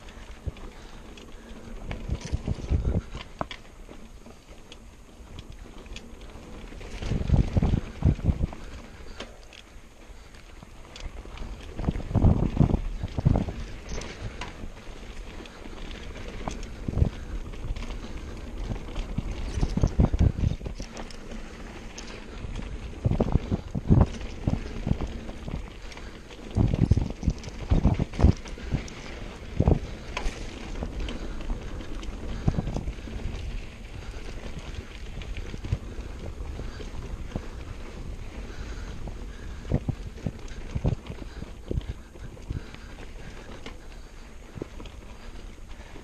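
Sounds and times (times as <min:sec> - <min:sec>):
bike knocking and rattling: 0:00.0 - 0:46.0
tyre and wind noise: 0:00.0 - 0:46.0.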